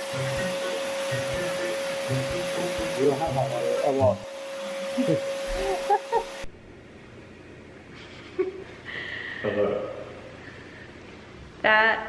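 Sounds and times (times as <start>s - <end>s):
small electric motor whining: 0.0s - 6.5s.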